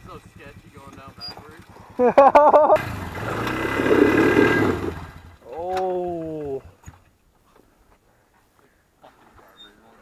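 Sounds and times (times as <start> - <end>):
atv engine running: 0.0 - 6.7
loud laughter: 1.9 - 2.8.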